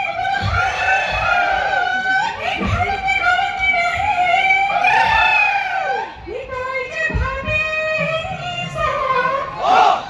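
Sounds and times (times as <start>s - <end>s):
drums beating: 0.0s - 5.5s, 6.2s - 10.0s.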